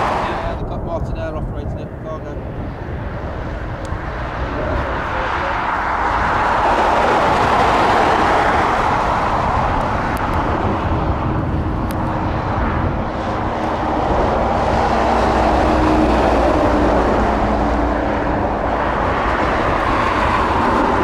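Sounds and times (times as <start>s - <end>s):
jet engines rushing: 0.0s - 21.0s.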